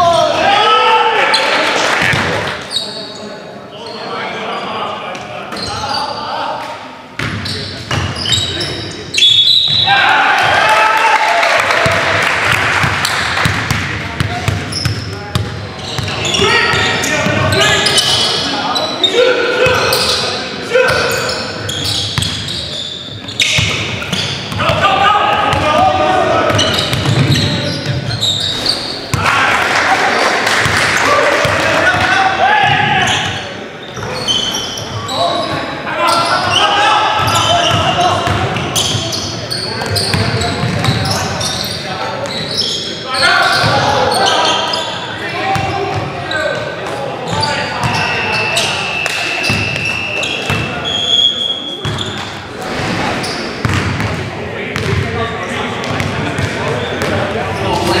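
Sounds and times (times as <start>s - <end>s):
players calling out: 7.4s - 58.0s.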